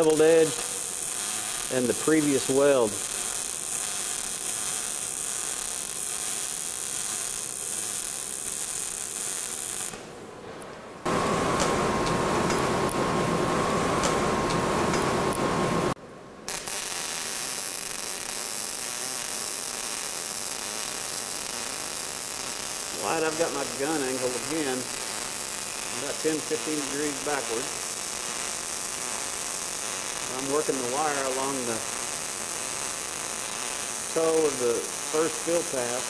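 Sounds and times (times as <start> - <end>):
welding arc crackle and hiss: 0.0 - 10.1, 13.8 - 36.0
noise with mid-pitched tone: 0.0 - 36.0.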